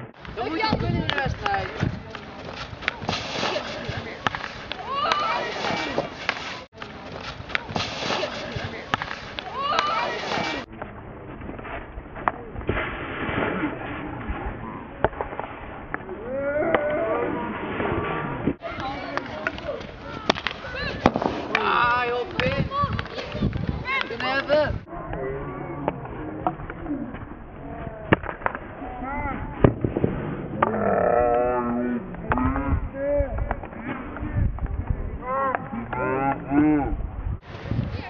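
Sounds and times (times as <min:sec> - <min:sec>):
people talking and calling out: 0:00.0 - 0:38.0
hockey ball cracks: 0:01.0 - 0:10.7, 0:18.8 - 0:24.5.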